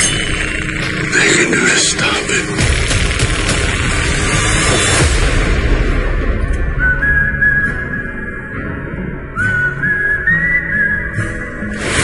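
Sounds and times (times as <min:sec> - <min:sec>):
whistled tune: 0:06.6 - 0:11.7.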